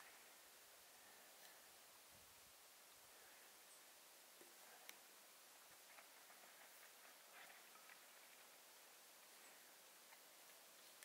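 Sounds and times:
faint hiss: 0.0s - 11.0s
faint ticks: 4.4s - 5.1s.

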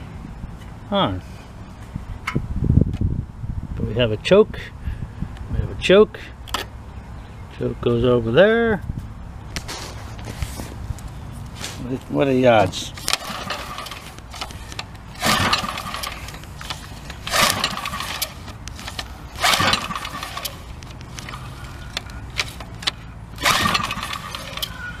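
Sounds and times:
engine turning over: 12.5s - 25.0s
recoil starter rope whirring: 12.7s - 25.0s.

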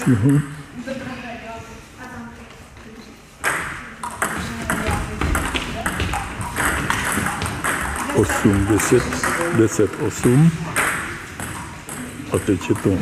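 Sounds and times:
table tennis ball clicking: 3.4s - 13.0s.

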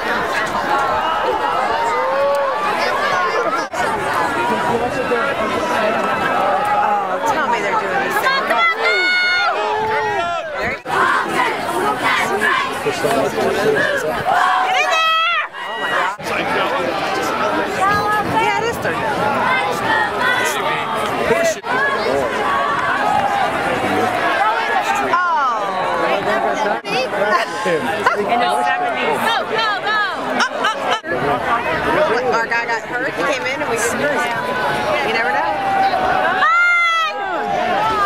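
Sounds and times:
crowd shouting: 0.0s - 38.0s
loud drawn-out yells: 8.2s - 12.9s, 13.8s - 16.2s, 34.3s - 38.0s.

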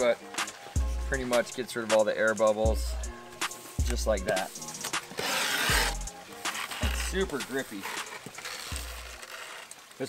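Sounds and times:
music with deep bass beat: 0.0s - 9.3s
griptape rasping on skateboard: 3.4s - 9.8s.

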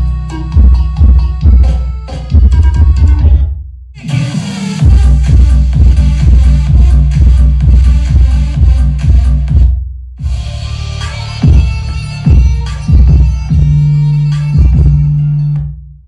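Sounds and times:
bass-heavy electronic music: 0.0s - 16.0s.

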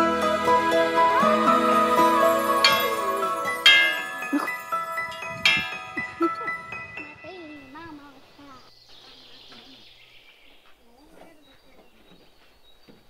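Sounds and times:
triangle bell ringing: 1.6s - 8.1s
birds chirping: 3.9s - 13.0s
child speaking softly: 7.3s - 9.8s, 10.8s - 12.2s.

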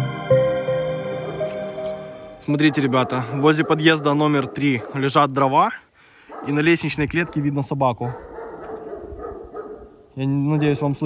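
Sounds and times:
dog barking faintly: 2.6s - 5.3s, 6.3s - 11.0s.

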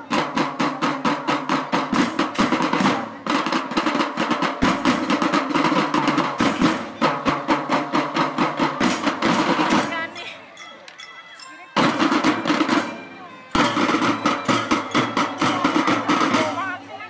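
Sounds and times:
drum band playing: 0.0s - 10.6s, 11.7s - 17.0s.

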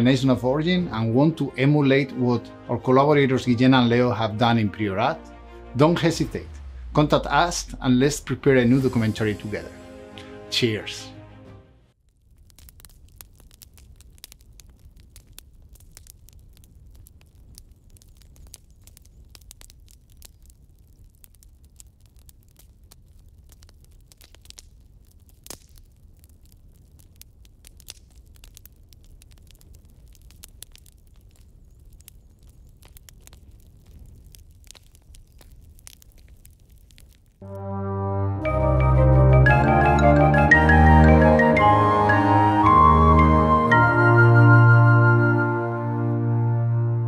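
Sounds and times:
low rumble: 5.2s - 9.6s
small clicks and pops: 12.0s - 37.4s.

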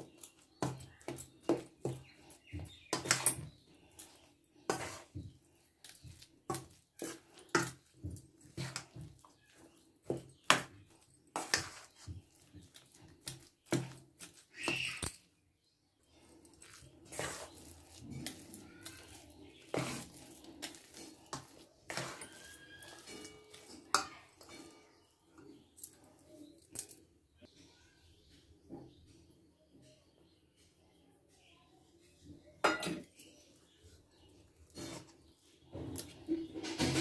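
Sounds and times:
metal spoon stirring in steel bowl: 0.0s - 15.4s, 16.1s - 26.8s, 34.7s - 37.0s.

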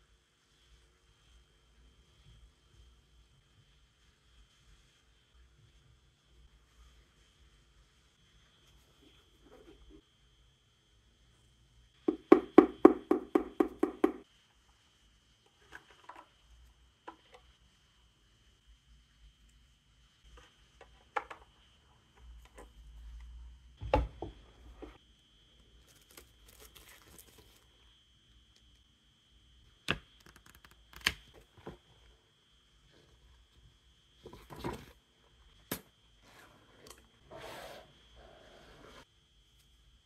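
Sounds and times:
plastic wrapping being peeled: 25.8s - 27.7s.

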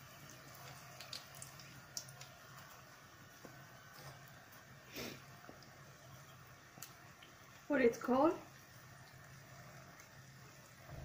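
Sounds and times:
oil sizzling in a pan: 0.0s - 11.0s.

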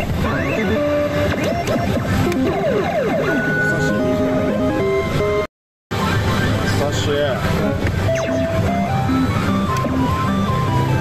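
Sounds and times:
electronic game music: 0.0s - 6.7s, 7.6s - 11.0s
slot machine reels spinning: 8.0s - 11.0s.

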